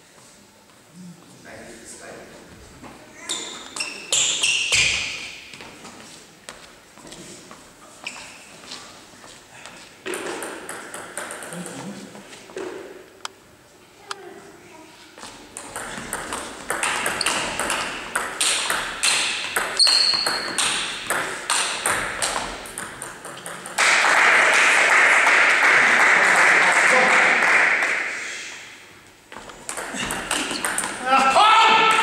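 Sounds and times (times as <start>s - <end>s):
spectators applauding: 23.8s - 28.2s.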